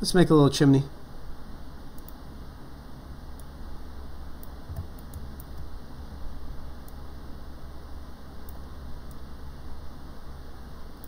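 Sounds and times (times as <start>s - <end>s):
low room hum: 0.0s - 11.0s
computer mouse clicks: 2.0s - 2.2s, 4.4s - 5.7s.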